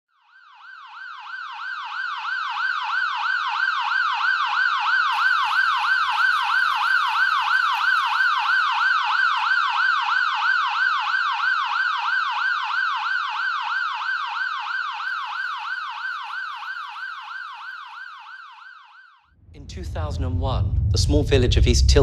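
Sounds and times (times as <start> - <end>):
police siren yelping: 0.4 - 19.2.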